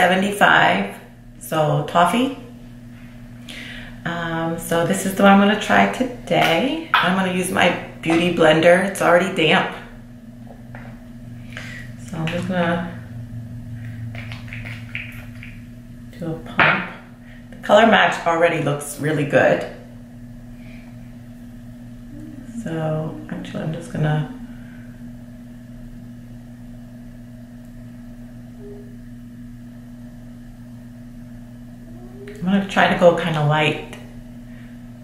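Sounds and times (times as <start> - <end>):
low electrical hum: 0.0 - 35.0.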